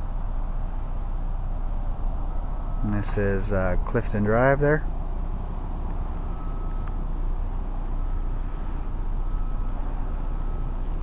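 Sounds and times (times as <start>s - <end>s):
low rumbling background noise: 0.0s - 11.0s.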